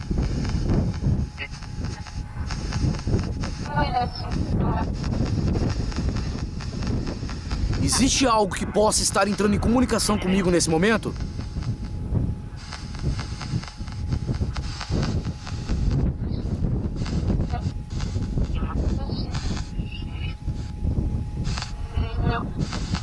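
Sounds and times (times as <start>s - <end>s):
choppy static bursts: 0.0s - 23.0s.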